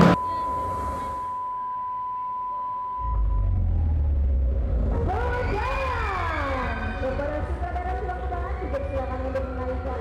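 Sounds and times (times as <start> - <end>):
steady high-pitched tone: 0.0 - 3.7
low rumble: 3.0 - 9.9.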